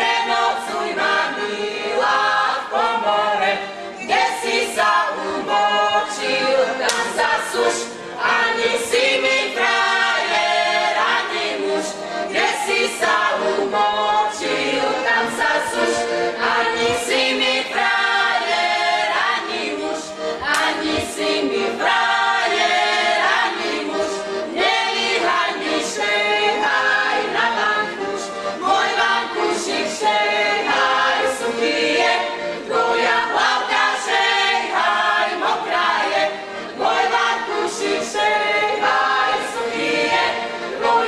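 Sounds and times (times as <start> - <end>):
women singing a folk song: 0.0 - 41.0.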